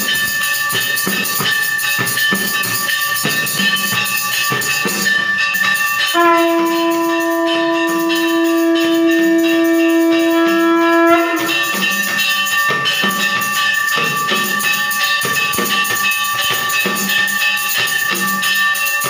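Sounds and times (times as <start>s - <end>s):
bells ringing: 0.0s - 19.0s
percussion strikes: 0.0s - 19.0s
horn long steady note: 6.1s - 11.9s.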